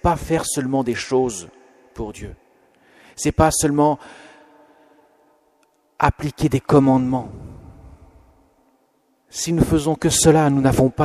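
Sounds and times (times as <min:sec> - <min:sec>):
man speaking in reverberant church: 0:00.0 - 0:11.0.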